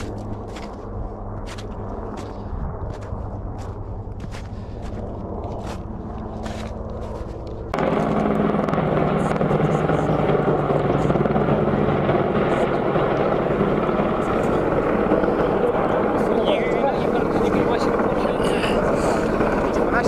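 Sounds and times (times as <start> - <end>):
helicopter flying overhead: 0.0 - 20.0.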